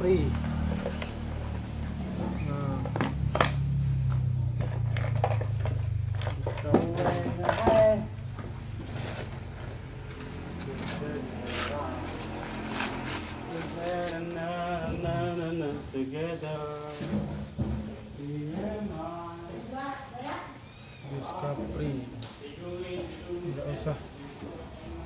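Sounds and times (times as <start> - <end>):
foam and cardboard rustling: 6.3 - 15.1.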